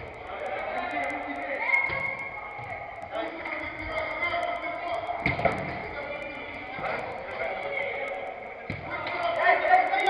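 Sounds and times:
players calling out indoors: 0.0 - 10.0.

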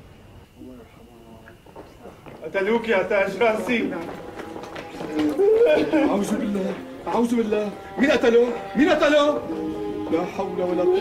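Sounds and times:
man wailing in grief: 5.4 - 6.2.

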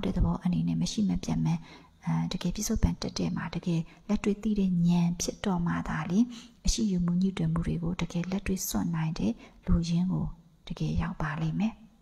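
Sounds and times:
woman talking into a microphone: 0.0 - 11.8.

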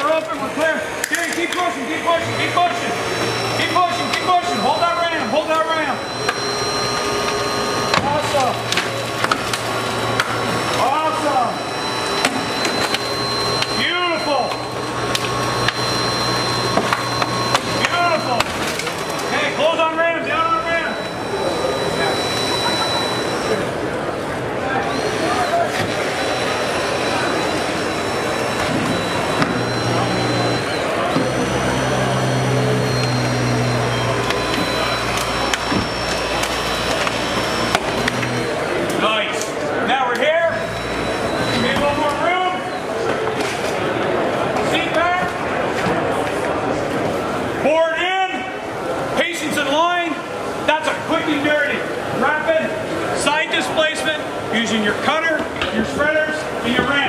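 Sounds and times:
hydraulic tool motor hum: 0.1 - 43.1.

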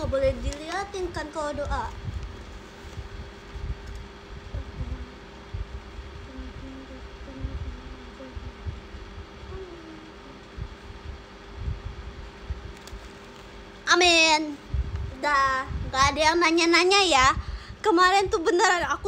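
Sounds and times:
steady low hum: 0.0 - 19.0
person murmuring a prayer: 4.5 - 5.3, 6.2 - 8.8, 9.4 - 10.8.

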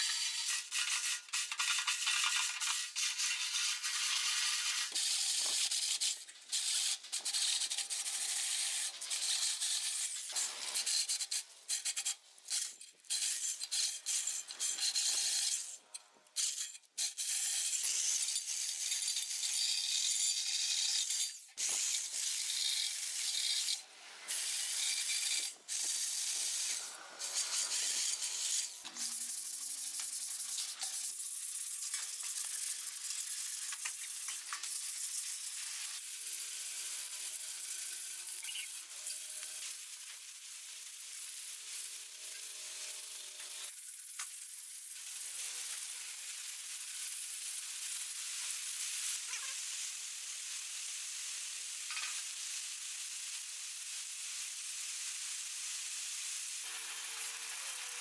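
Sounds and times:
drill scouring rust off steel: 0.0 - 15.8, 16.5 - 43.8.

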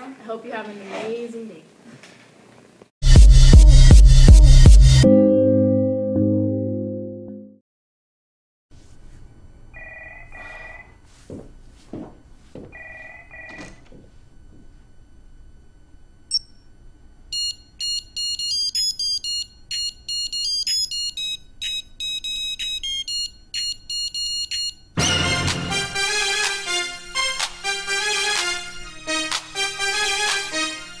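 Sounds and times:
wristwatch alarm beeping tune: 17.4 - 24.9.

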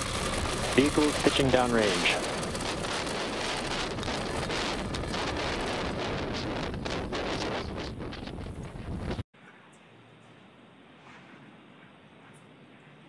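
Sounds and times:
rocket engines rumbling and crackling: 0.0 - 9.3.

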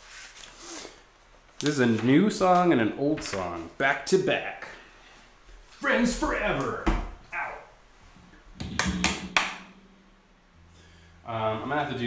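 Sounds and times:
knocks and taps on guitar: 8.6 - 9.8.

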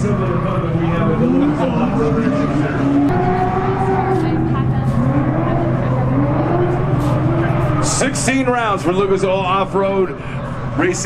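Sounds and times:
car engine revving high: 0.0 - 9.6
announcer over public address: 0.0 - 10.1.

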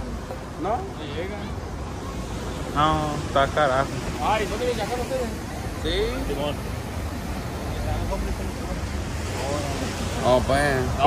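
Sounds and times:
faint voices: 0.0 - 11.0
surf washing on beach: 0.0 - 11.0.

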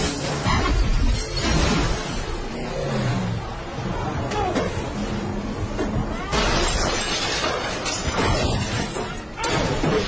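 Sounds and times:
debris clattering: 5.6 - 10.0.

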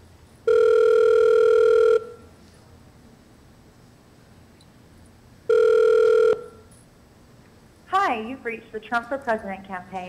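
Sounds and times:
faint phone line hiss: 0.0 - 2.3, 5.5 - 6.7
telephone ringback tone: 0.5 - 2.3, 5.5 - 6.7.

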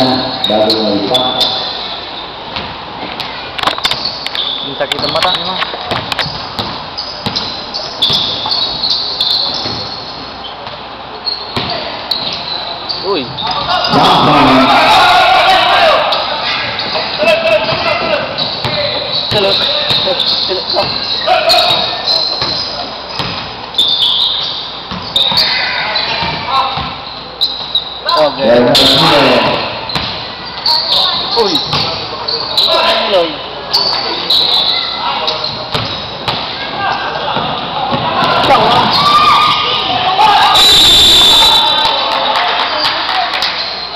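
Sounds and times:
basketball bouncing on hardwood: 5.9 - 7.5
people shouting: 13.6 - 16.6, 37.8 - 42.1.

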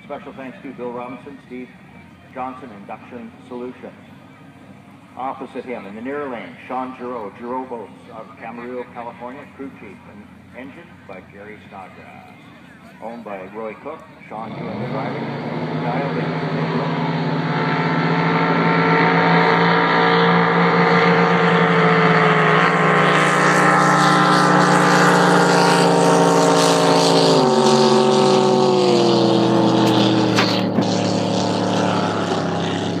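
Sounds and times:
boat engine running loud: 7.0 - 33.0.

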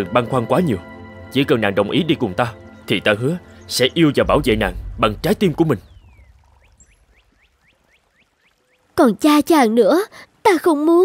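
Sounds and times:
dialogue: 0.0 - 11.0.

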